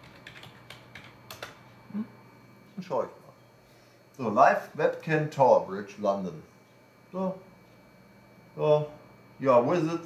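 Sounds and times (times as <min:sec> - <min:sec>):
keyboard typing clicks: 0:00.0 - 0:01.6.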